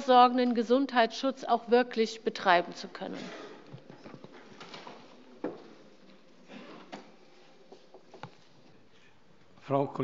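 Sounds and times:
spoken word in large hall: 8.7s - 10.0s.

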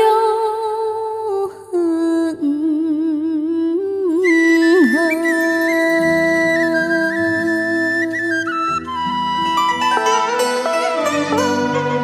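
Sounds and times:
woman singing long notes: 0.0s - 8.2s.

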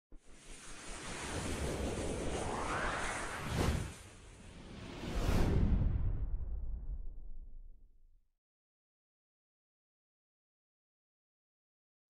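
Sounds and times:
rising whoosh: 0.5s - 7.4s.

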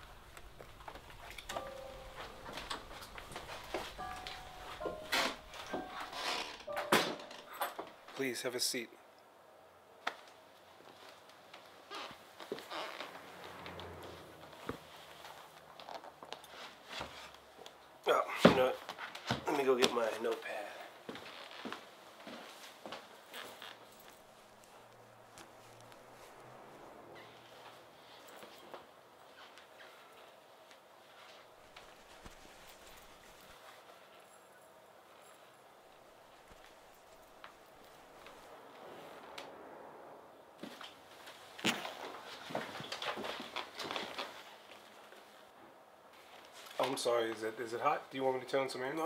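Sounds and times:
soft footsteps: 0.0s - 7.9s, 10.0s - 17.9s, 21.0s - 34.5s, 40.6s - 45.5s.

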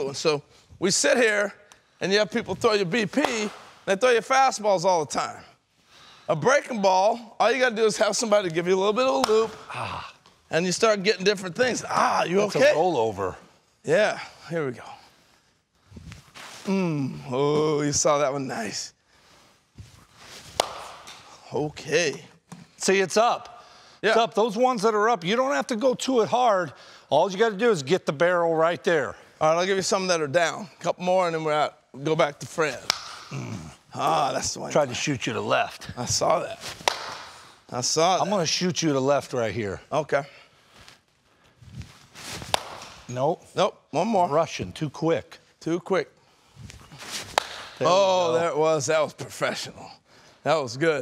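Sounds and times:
wooden bat cracking baseball: 20.5s - 21.3s, 32.8s - 33.3s, 36.8s - 37.5s, 42.4s - 43.1s, 47.2s - 47.8s
rustle of footwork and swing: 40.7s - 43.1s, 46.6s - 47.8s.

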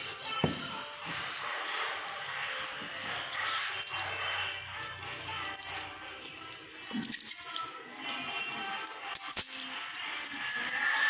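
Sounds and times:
noodles slurped and chewed: 1.3s - 9.1s.

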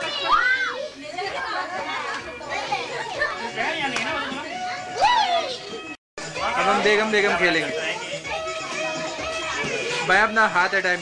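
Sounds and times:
children and adults talking: 0.0s - 11.0s.

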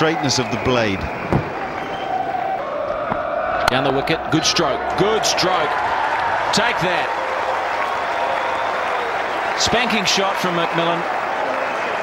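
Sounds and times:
crowd clapping: 0.0s - 2.5s, 4.6s - 12.0s.

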